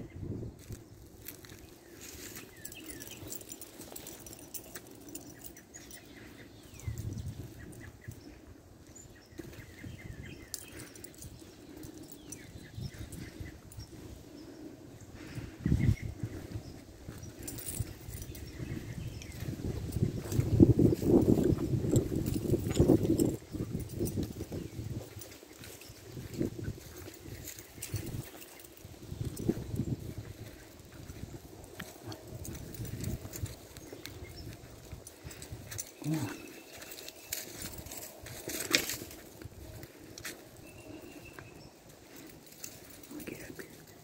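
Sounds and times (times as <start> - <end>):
footsteps crunching through dry leaves: 0.6 - 5.4, 15.4 - 43.9
faint bird chirps: 1.4 - 21.5.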